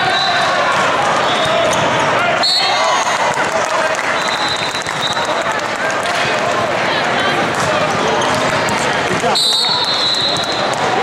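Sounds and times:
people cheering: 0.0s - 11.0s
hand clapping: 3.2s - 6.8s, 8.3s - 10.9s.

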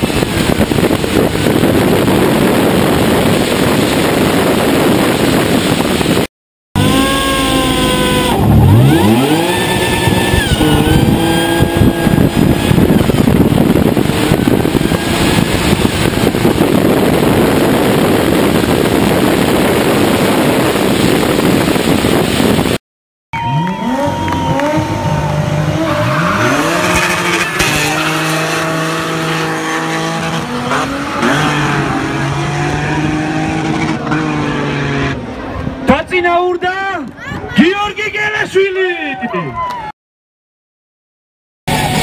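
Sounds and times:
wind rush: 0.0s - 22.8s
drag car engine: 6.8s - 22.6s, 23.4s - 36.1s, 41.7s - 42.0s.

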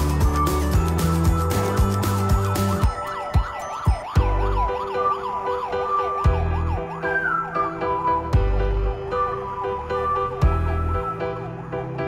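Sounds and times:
background music with drum hits: 0.0s - 4.8s
ambulance siren yelping: 0.0s - 12.0s.

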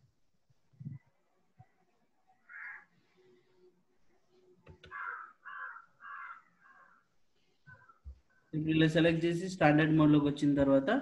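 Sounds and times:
bird calling: 2.4s - 2.9s, 4.9s - 7.0s.

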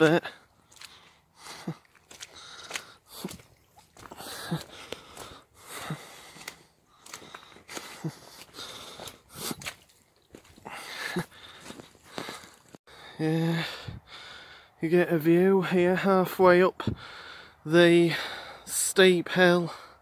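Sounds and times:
person breathing hard: 0.3s - 9.8s, 10.6s - 14.8s, 16.8s - 18.7s.

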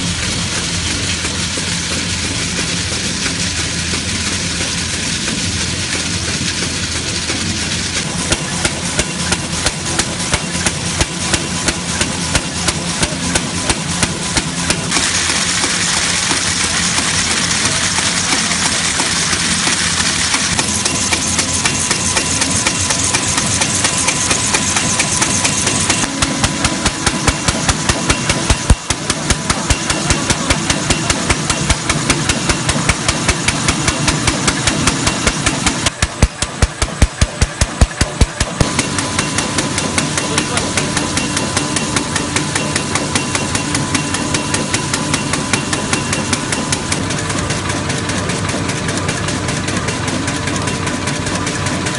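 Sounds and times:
fast clacking of mechanism: 0.0s - 51.9s
machine mechanical drone: 0.0s - 51.9s.

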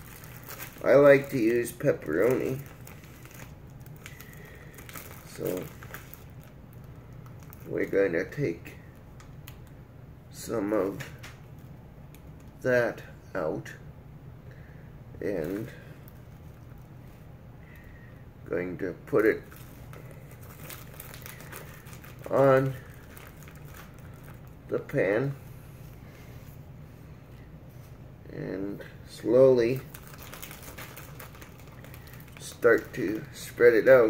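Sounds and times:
plastic package rustling: 0.0s - 9.7s, 15.4s - 17.0s, 19.1s - 24.7s, 29.7s - 34.0s
steady low hum: 0.0s - 34.0s.

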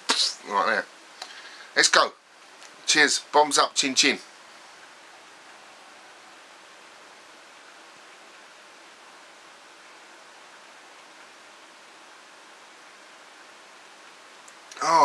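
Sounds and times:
faint microphone hiss: 0.0s - 15.0s.

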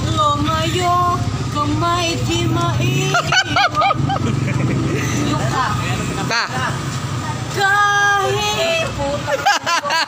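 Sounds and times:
motorcycle engine humming: 0.0s - 10.0s.

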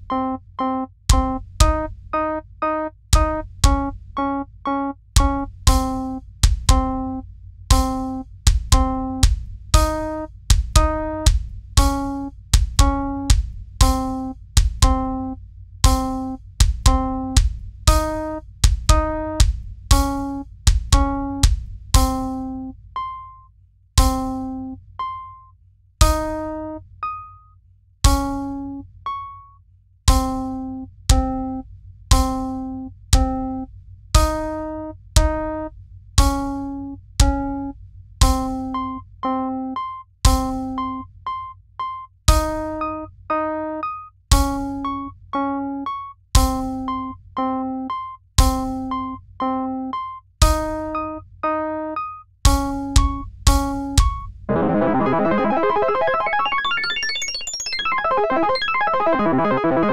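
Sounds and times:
chord hits with drum thuds: 0.0s - 4.4s, 5.2s - 22.5s, 24.0s - 24.6s, 26.0s - 26.7s, 28.1s - 28.6s, 30.1s - 31.5s, 32.1s - 32.6s, 34.2s - 37.5s, 38.2s - 39.4s, 40.3s - 41.0s, 42.3s - 43.5s, 44.3s - 45.1s, 46.4s - 47.5s, 48.4s - 49.6s, 50.4s - 56.7s
chiptune synthesized music: 0.0s - 8.2s, 8.8s - 20.4s, 21.0s - 23.4s, 24.0s - 25.4s, 26.0s - 27.3s, 28.1s - 29.4s, 30.1s - 41.0s, 42.3s - 59.9s
synthesized song: 50.5s - 59.9s.

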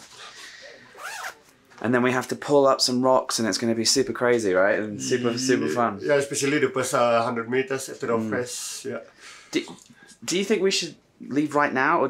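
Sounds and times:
clothing zipper being pulled: 0.9s - 1.4s.

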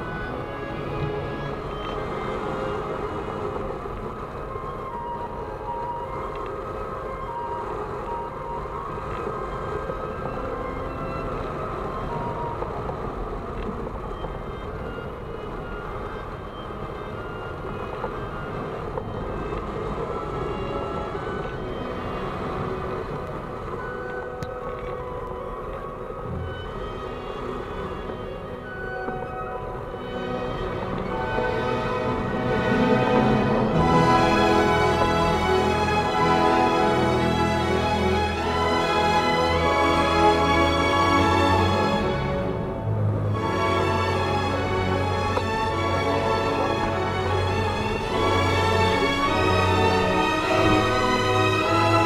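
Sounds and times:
slow background music: 0.0s - 52.0s
wind noise on microphone: 0.0s - 52.0s.

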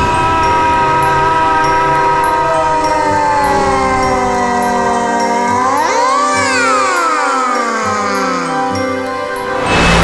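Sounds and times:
held tone sliding downward: 0.0s - 9.3s.

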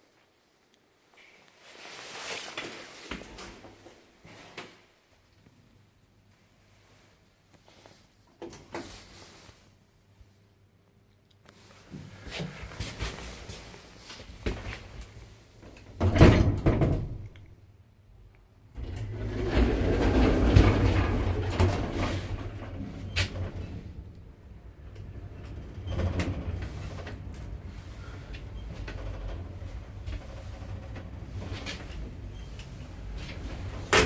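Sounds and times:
automatic doors sliding closed: 18.8s - 34.0s
lift humming: 18.8s - 34.0s.

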